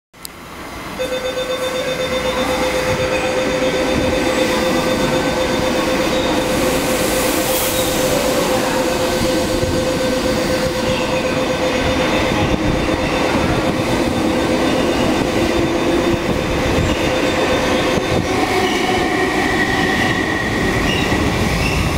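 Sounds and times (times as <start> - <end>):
train wheels rumbling on rails: 0.3 - 21.9.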